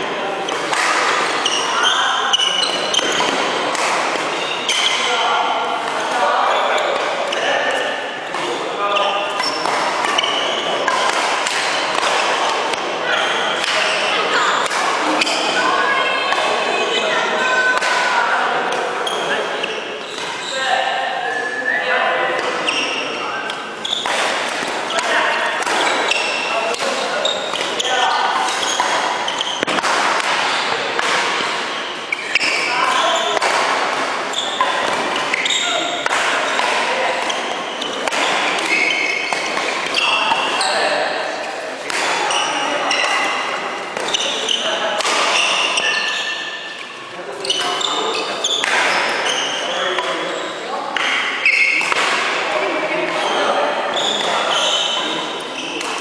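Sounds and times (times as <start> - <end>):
voices talking: 0.0 - 56.0
racket hitting shuttlecock: 0.5 - 1.6, 2.3 - 5.1, 9.3 - 12.9, 13.5 - 15.6, 17.7 - 18.9, 23.5 - 40.6, 41.5 - 46.8, 48.5 - 49.3, 51.0 - 52.4.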